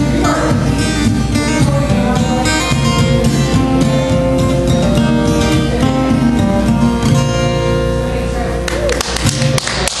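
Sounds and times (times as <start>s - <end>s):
acoustic guitar chord ringing: 0.0s - 10.0s
scattered handclaps: 8.6s - 10.0s.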